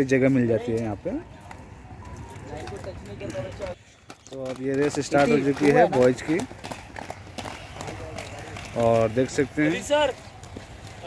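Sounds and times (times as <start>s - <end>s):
light rhythmic footsteps: 0.0s - 11.0s.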